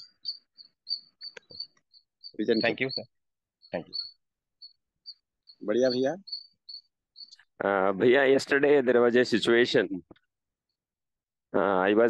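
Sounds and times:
cricket chirping: 0:00.0 - 0:08.6.

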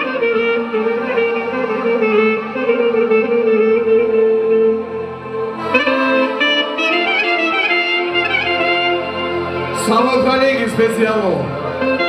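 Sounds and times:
band accompaniment: 0:00.0 - 0:12.0
clarinet melody: 0:00.0 - 0:12.0.

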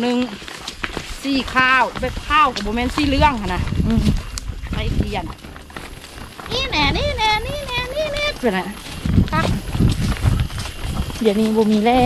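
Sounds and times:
footsteps on dirt path: 0:00.0 - 0:12.0
hand-held camera jostling: 0:02.0 - 0:12.0
person speaking: 0:06.4 - 0:09.7.

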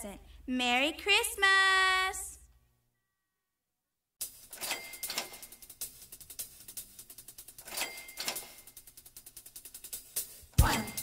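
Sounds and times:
rapid mechanical ticking: 0:04.2 - 0:10.4.

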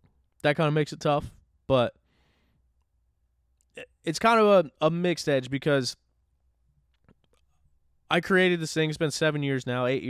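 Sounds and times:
man inhaling: 0:02.0 - 0:02.7.

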